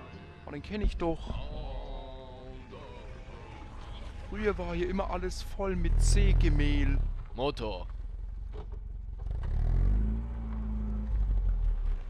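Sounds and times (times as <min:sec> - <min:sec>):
vehicle engine running: 0:04.0 - 0:12.0.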